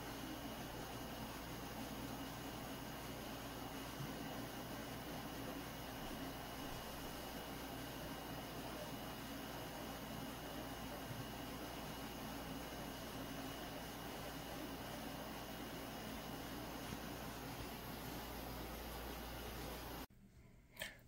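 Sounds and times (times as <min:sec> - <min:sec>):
steady background hiss: 0:00.0 - 0:20.1.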